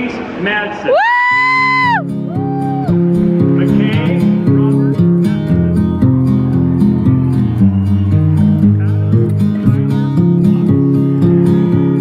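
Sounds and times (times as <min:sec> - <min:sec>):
person whooping: 0:00.9 - 0:03.1
acoustic guitar music: 0:01.6 - 0:12.0.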